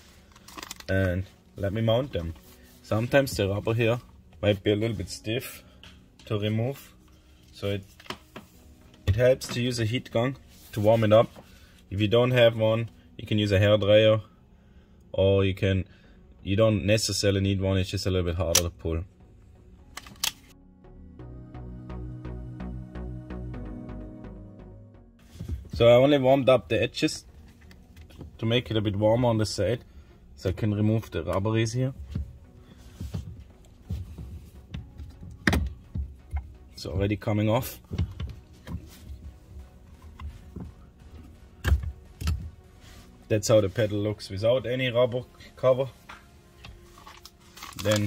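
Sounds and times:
background music: 0.0s - 48.0s.

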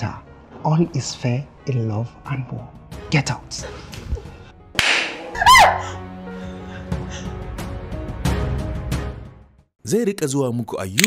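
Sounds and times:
background music: 0.0s - 11.0s
slap across the face: 4.8s - 5.3s
high-pitched cry: 5.2s - 6.0s.

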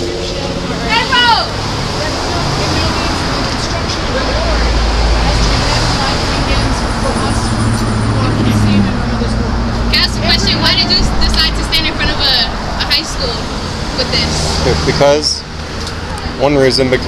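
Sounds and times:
people talking: 0.0s - 15.4s, 16.2s - 17.0s
road traffic: 0.0s - 17.0s
vehicle engine rumbling: 0.0s - 17.0s.

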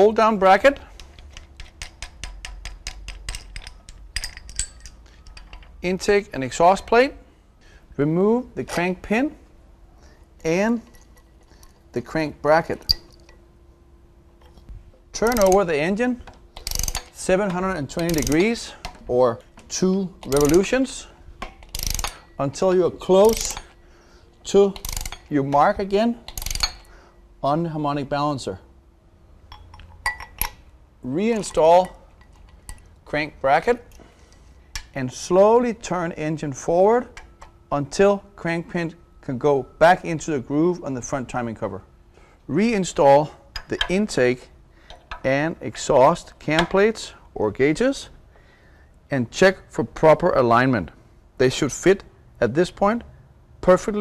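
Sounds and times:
ratchet wrench clicking: 1.0s - 5.6s, 15.2s - 15.7s, 16.5s - 17.3s, 17.9s - 18.9s, 19.7s - 20.8s, 21.4s - 22.4s, 23.2s - 23.7s, 24.7s - 25.3s, 26.3s - 26.9s
metallic clinks of tools: 1.4s - 5.7s.

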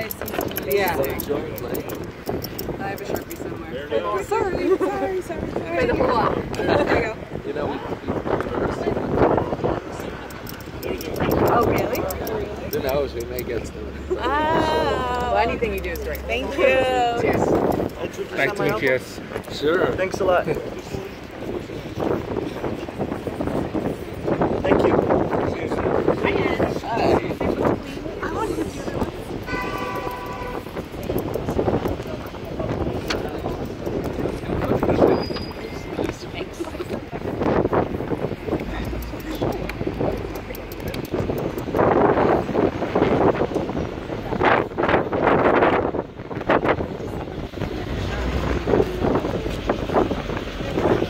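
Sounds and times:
people talking: 0.0s - 23.8s, 24.6s - 44.9s, 46.5s - 51.0s
outdoor noise: 0.0s - 51.0s
people laughing: 14.0s - 15.4s
horn sounding steady note: 29.4s - 30.8s.

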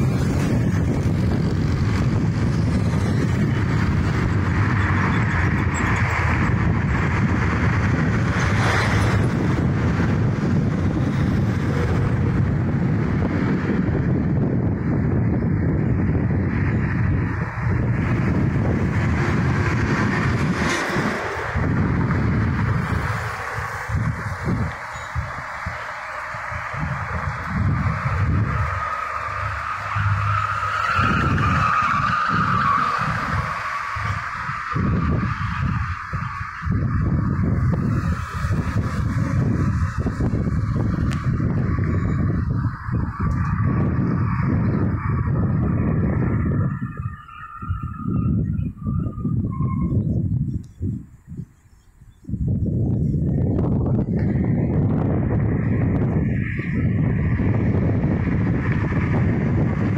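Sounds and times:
road traffic: 0.0s - 59.9s
wind rumbling on microphone: 0.0s - 59.9s.

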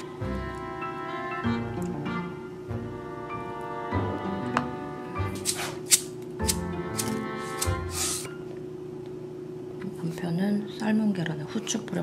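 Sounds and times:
background instrumental music: 0.0s - 8.4s.

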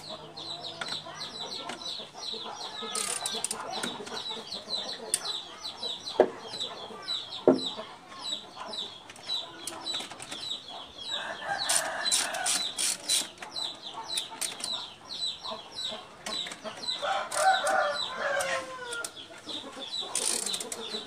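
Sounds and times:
birds chirping: 0.0s - 21.0s
sharp knocks: 7.4s - 7.8s.

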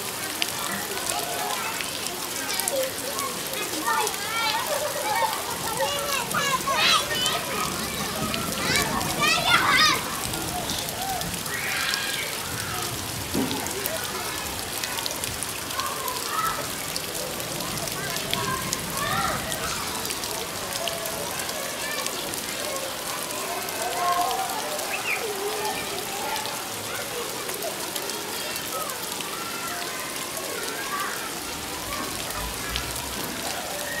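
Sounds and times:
faint voices: 0.0s - 34.0s
rain on leafy plants: 0.0s - 34.0s.

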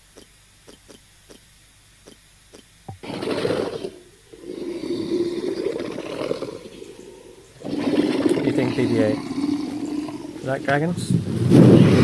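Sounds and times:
faint ticks: 0.0s - 3.0s
dragon roar: 3.0s - 11.0s.

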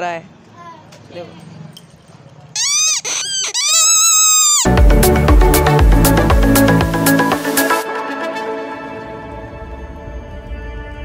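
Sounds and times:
toy whistle blowing: 2.6s - 4.7s
electronic music with bass beat: 4.6s - 7.8s.

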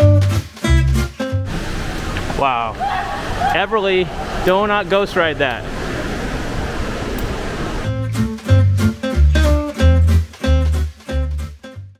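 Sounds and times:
guitar music: 0.0s - 2.2s, 7.8s - 11.9s
busy hotel lobby noise: 1.4s - 7.9s.

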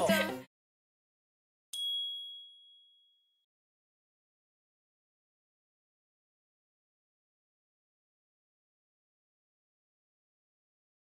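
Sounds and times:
bright high ding: 1.8s - 3.4s.

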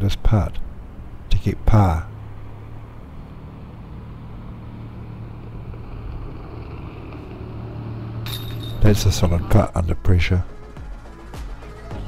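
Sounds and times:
distant engine drone: 0.0s - 11.8s.

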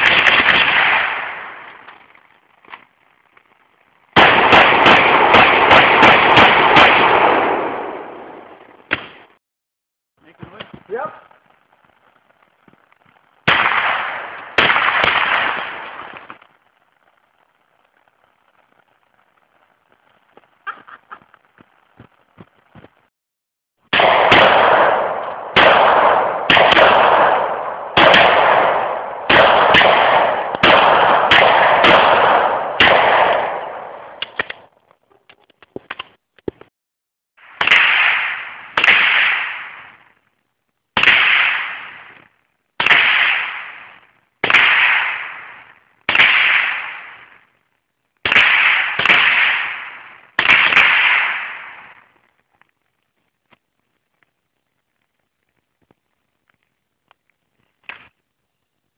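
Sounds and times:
rifle shots: 0.0s - 1.9s, 4.2s - 9.4s, 13.4s - 16.4s, 23.9s - 34.7s, 37.4s - 40.1s, 41.0s - 47.5s, 48.2s - 52.1s.

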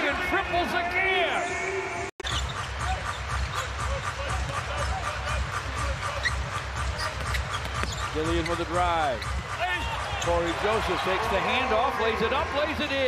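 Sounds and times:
crowd noise: 0.0s - 13.0s
pulsing arena music beat: 0.0s - 13.0s
shoe squeaks and knocks: 2.2s - 3.8s, 6.0s - 9.6s.

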